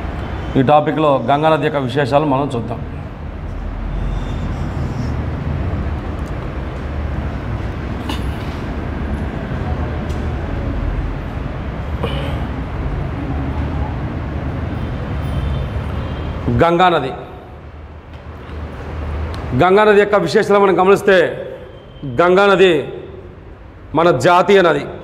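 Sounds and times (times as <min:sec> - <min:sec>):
low rumbling background noise: 0:00.0 - 0:25.0.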